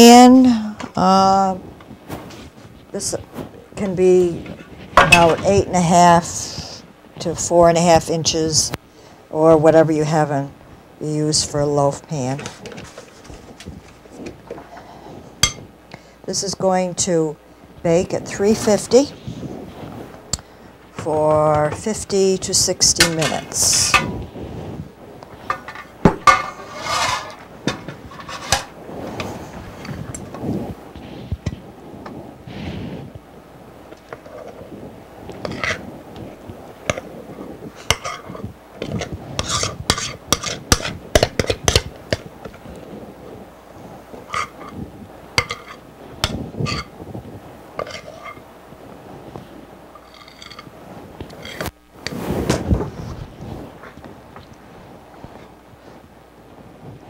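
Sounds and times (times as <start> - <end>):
spoon scraping and clinking bowl: 25.5 - 28.7, 37.8 - 41.8, 45.4 - 46.9, 47.8 - 48.4, 50.0 - 50.7.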